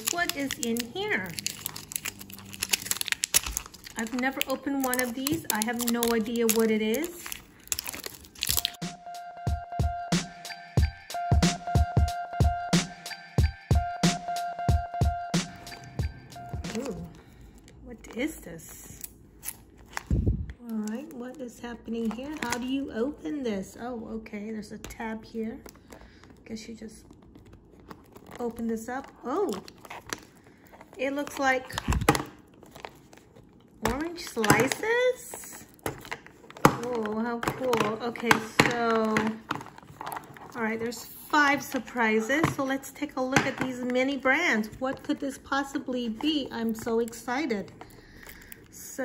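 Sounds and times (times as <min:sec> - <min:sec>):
plastic wrapper crinkling and tearing: 0:00.0 - 0:08.8, 0:16.5 - 0:22.9, 0:24.8 - 0:42.0, 0:44.1 - 0:48.9
music with drum beat: 0:08.8 - 0:16.8.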